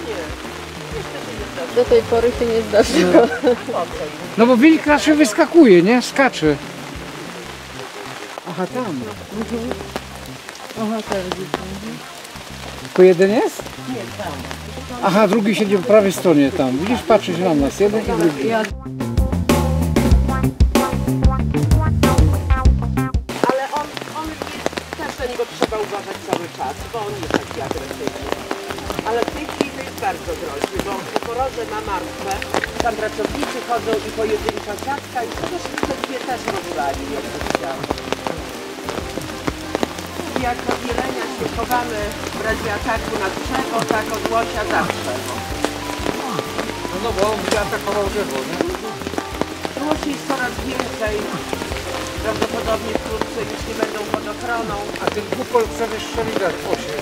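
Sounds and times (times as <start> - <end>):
voices murmuring: 0.0 - 18.9, 23.3 - 57.0
background music: 0.0 - 57.0
rain falling: 0.0 - 57.0
raindrops ticking: 0.0 - 57.0.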